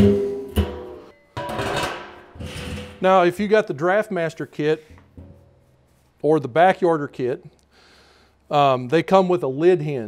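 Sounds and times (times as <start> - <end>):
metal drum scraping on concrete: 0.0 - 3.1.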